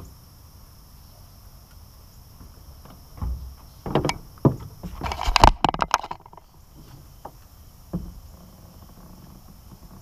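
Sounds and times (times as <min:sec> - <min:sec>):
knocks on aluminum boat deck: 0:02.9 - 0:05.0, 0:07.3 - 0:08.3.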